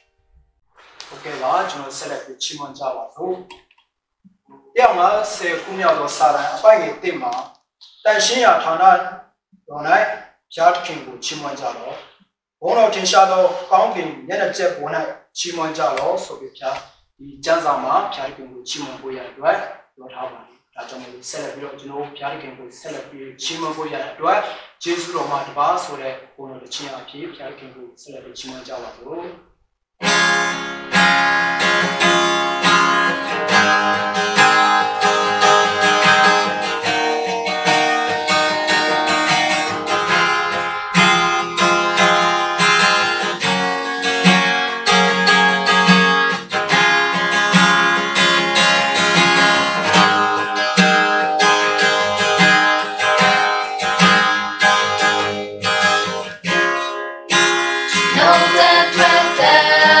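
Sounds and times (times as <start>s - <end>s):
acoustic guitar strumming: 0.8s - 2.2s, 4.5s - 7.2s, 30.0s - 60.0s
people singing: 58.0s - 60.0s.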